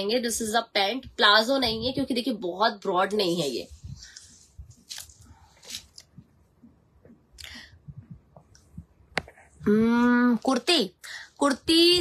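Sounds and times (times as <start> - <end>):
faint handling noise: 3.5 - 6.4.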